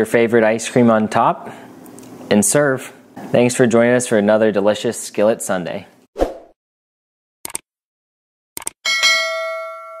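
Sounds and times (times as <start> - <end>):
quick clicks: 8.6 - 8.8
bright bell chime: 8.9 - 10.0.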